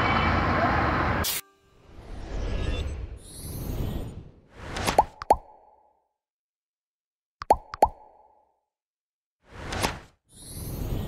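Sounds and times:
animated pops: 4.8s - 5.8s, 7.4s - 8.5s.

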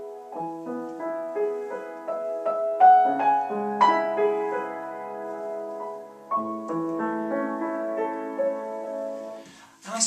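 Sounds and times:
piano playing broken chords: 0.0s - 9.6s.

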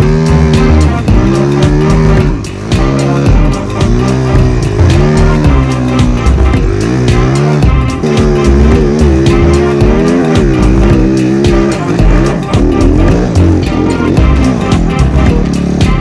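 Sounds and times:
music with steady beat: 0.0s - 16.0s
snowbike engine revving: 0.0s - 16.0s.

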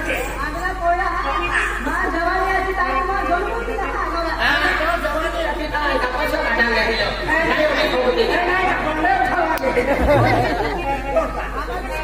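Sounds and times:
actors talking: 0.0s - 12.0s.

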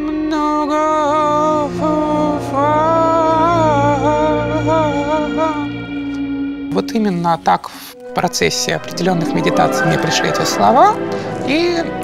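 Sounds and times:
person chanting: 0.0s - 5.8s, 8.1s - 12.0s.

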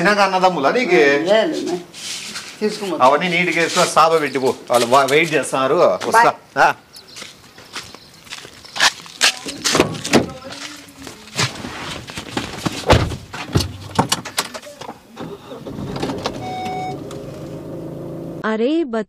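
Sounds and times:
sharp clicks and knocks: 12.4s - 15.0s
car engine humming: 13.3s - 18.4s
short electronic beep: 16.4s - 17.0s.

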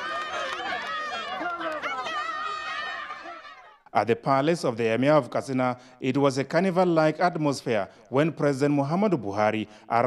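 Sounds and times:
crowd talking and calling out: 0.0s - 3.9s.

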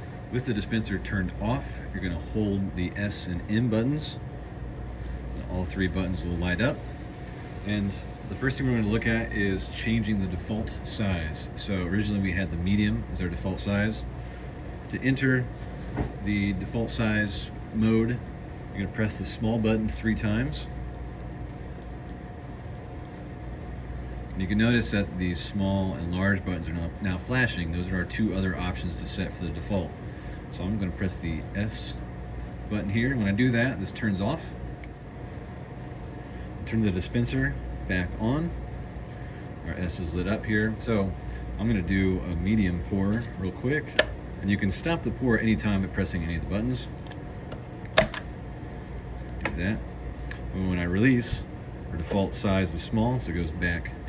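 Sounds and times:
faint whine: 0.0s - 54.0s
low background hum: 0.0s - 54.0s.

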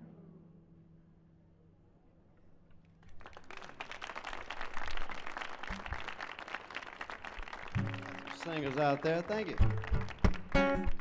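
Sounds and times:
audience applause: 3.0s - 11.0s.

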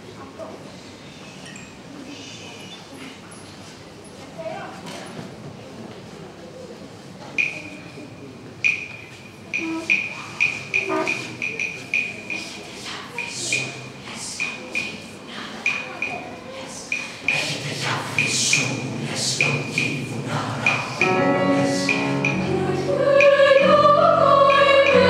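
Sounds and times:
high ringing pings: 8.7s - 12.3s.

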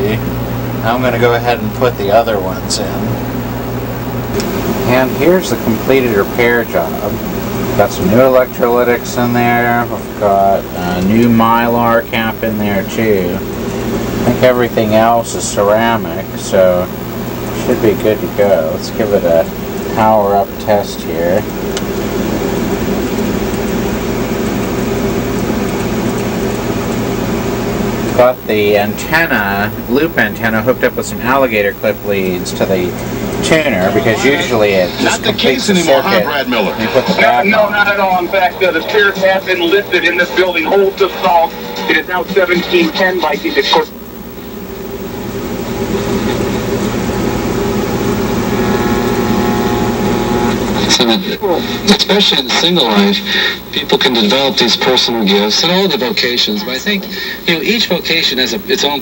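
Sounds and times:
low hum: 0.0s - 59.0s
radio static hiss: 0.0s - 59.0s.

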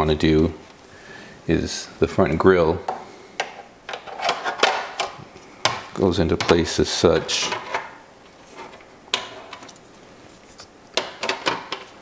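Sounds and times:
hard plastic parts handled: 2.3s - 12.0s.

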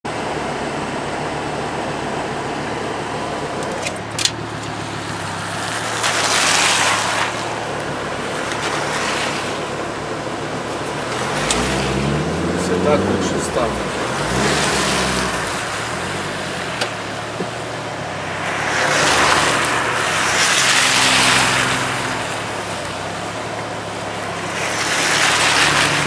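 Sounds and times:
car engine running at low revs: 0.0s - 26.0s
wet road hiss: 1.2s - 26.0s
engine revving up: 10.9s - 23.4s, 24.3s - 26.0s.

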